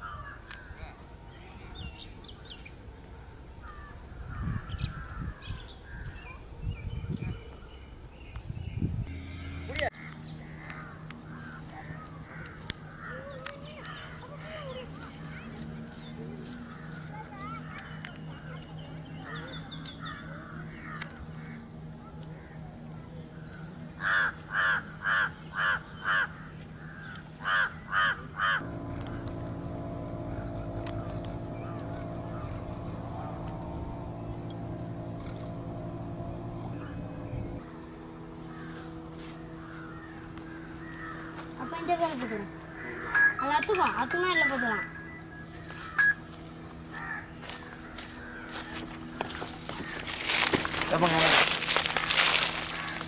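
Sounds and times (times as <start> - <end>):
low hum: 0.0 - 26.0, 28.6 - 53.0
birds chirping: 3.6 - 53.0
crow cawing: 10.0 - 14.8, 24.0 - 28.6, 39.5 - 44.0, 46.9 - 51.4, 52.1 - 53.0.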